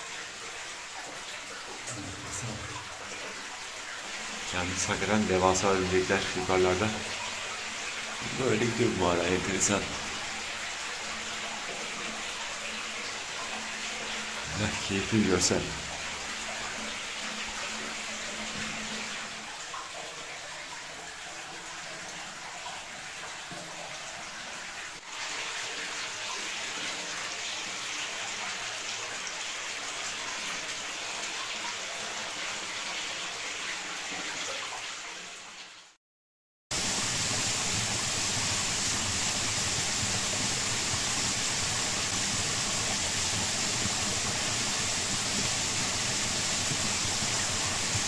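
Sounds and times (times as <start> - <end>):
water rushing in a cave: 0.0 - 35.9, 36.7 - 48.0.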